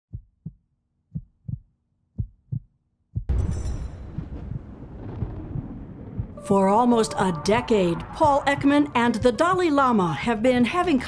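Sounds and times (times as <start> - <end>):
heartbeat-like double thump: 3.2 - 6.4.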